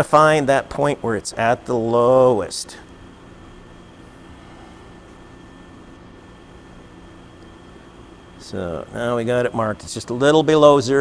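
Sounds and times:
low machine hum with hiss: 0.0 - 11.0.

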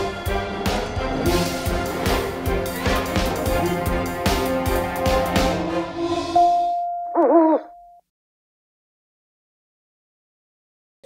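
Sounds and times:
held tone: 6.4 - 8.0
owl hoot: 7.2 - 7.7.

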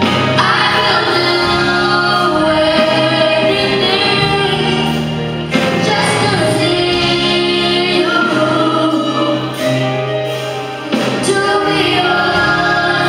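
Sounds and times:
children singing gospel song: 0.0 - 13.0.

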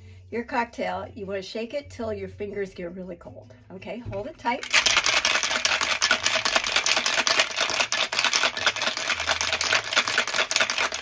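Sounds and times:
ice rattling in cocktail shaker: 4.6 - 11.0.

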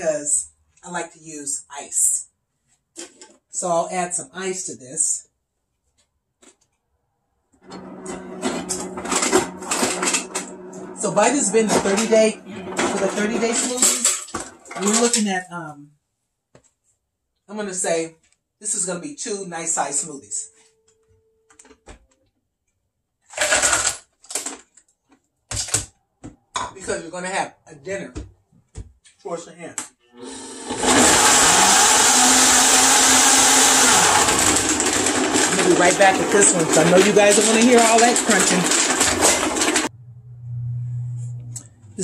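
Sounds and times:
ice cubes clattering: 8.0 - 15.2, 23.3 - 24.6, 33.5 - 39.9
plastic blender jar clattering: 34.4 - 39.9
steady low hum: 39.9 - 42.0.

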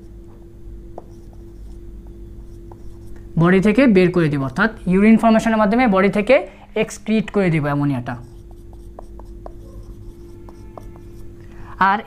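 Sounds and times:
low steady hum: 0.0 - 12.0
marker writing on whiteboard: 0.9 - 3.7, 6.8 - 11.4.

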